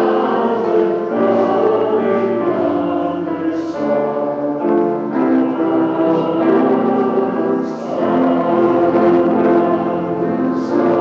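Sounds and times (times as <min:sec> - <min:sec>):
choir and congregation singing a hymn: 0:00.0 - 0:11.0
instrumental accompaniment: 0:00.0 - 0:11.0.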